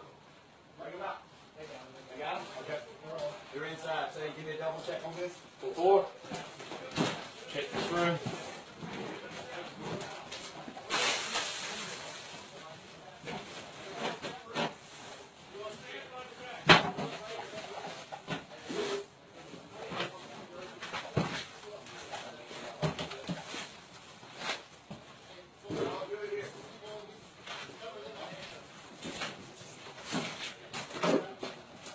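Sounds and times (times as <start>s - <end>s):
muffled voices talking: 0.8s - 31.9s.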